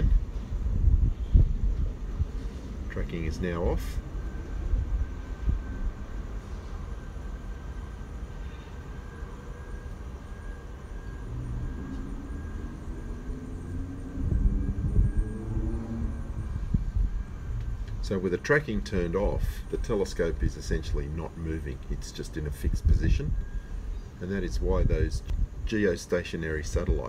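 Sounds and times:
distant engine hum: 0.0s - 27.0s
faint high whine: 0.0s - 27.0s
low outdoor rumble: 0.0s - 27.0s.

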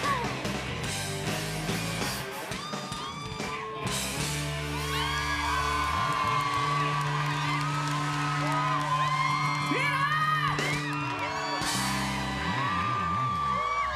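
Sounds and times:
drums and cymbals: 0.0s - 5.3s, 9.5s - 12.6s
live rock band playing: 0.0s - 13.0s
audience whooping and cheering: 2.4s - 13.9s.

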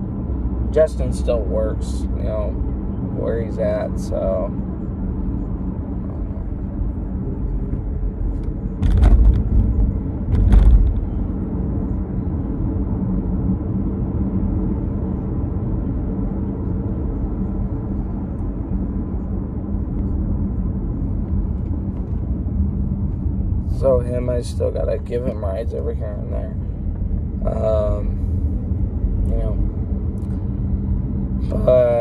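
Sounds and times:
car road and engine drone: 0.0s - 32.0s
loud thuds: 8.8s - 11.1s.

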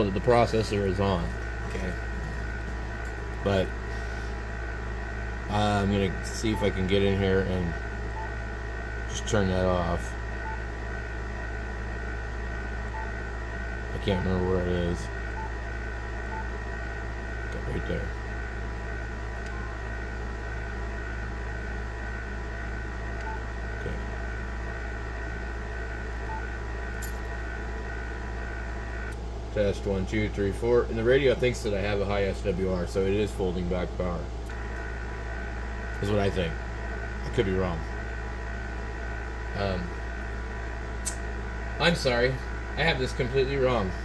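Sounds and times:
electrical hum and hiss: 0.0s - 44.0s
faint high whine: 0.0s - 44.0s.

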